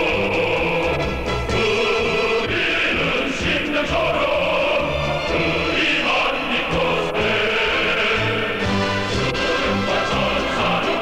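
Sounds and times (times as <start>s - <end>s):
male choir singing: 0.0s - 11.0s.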